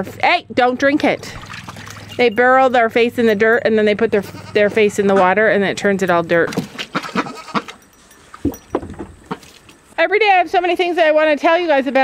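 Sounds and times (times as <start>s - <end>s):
goose splashing water: 0.8s - 2.4s, 6.0s - 8.5s.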